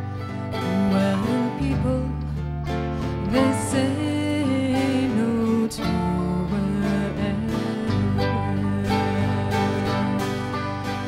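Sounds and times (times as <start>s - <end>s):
acoustic guitar: 0.0s - 11.0s
folk band playing: 0.0s - 11.0s
woman singing: 0.0s - 11.0s.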